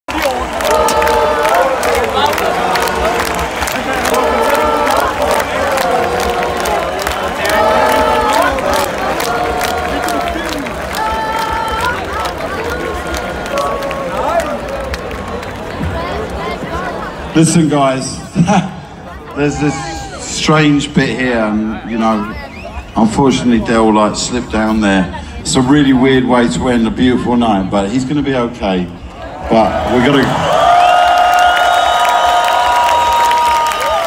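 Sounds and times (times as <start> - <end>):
crowd noise: 0.0 - 34.0.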